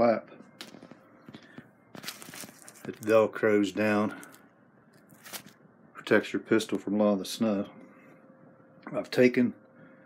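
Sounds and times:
velcro fastening rustle: 2.0s - 3.0s, 5.1s - 5.6s.

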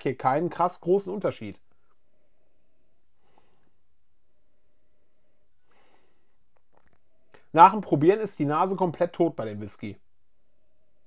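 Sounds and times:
man sniffing: 3.2s - 3.8s, 5.6s - 6.4s.

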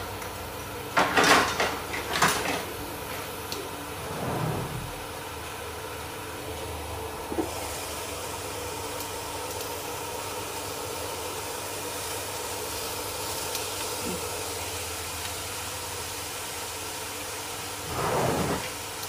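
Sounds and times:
induction cooker fan hum: 0.0s - 19.0s.

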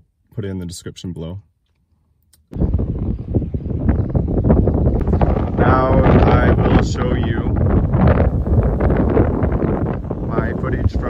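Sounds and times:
wind blowing across microphone: 2.5s - 11.0s.

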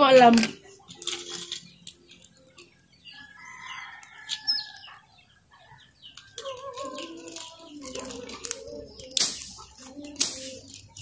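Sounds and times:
rooster crowing: 3.2s - 5.1s, 5.7s - 8.2s.

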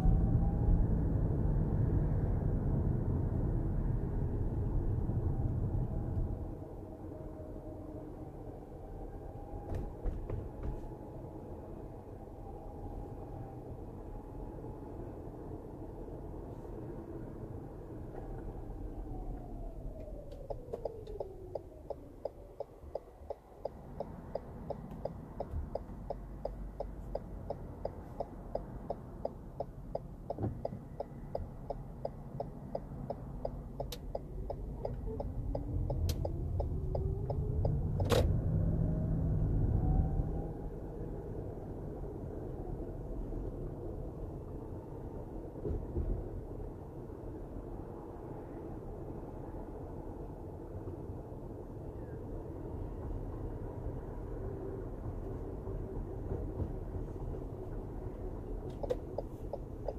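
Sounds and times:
car engine and road noise: 0.0s - 59.9s
turn signal ticking: 19.4s - 38.2s, 58.4s - 59.9s.

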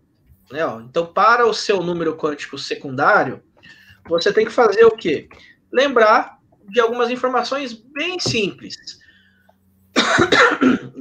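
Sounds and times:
person coughing: 10.0s - 11.0s.

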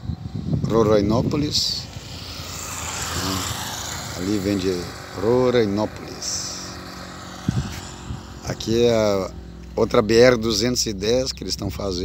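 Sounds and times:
small motorcycle passing: 0.0s - 12.0s.

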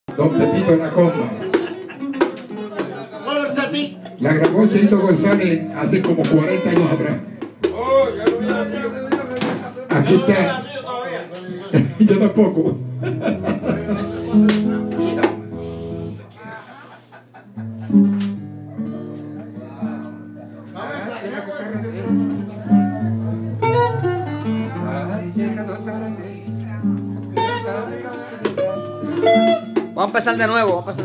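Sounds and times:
acoustic guitar plucking and strumming: 0.1s - 10.7s, 11.3s - 21.0s, 21.7s - 31.0s.

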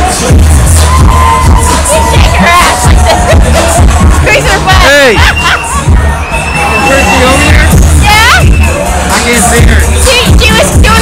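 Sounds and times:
crowd babble: 0.0s - 11.0s
loud dance music with heavy bass: 0.0s - 11.0s.

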